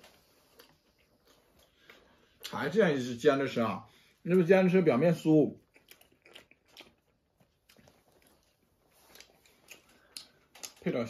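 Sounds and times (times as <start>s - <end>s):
chewing crisp bun: 5.2s - 10.9s.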